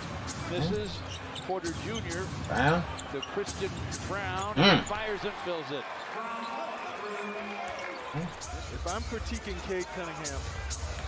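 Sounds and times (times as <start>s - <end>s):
arena background noise: 0.1s - 1.2s
play-by-play commentary: 0.4s - 10.5s.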